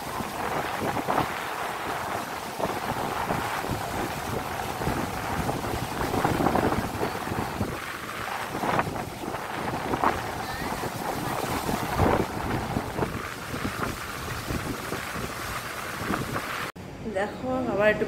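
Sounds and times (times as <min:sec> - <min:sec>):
surf breaking on beach: 0:00.0 - 0:16.7
wind buffeting microphone: 0:00.0 - 0:16.7.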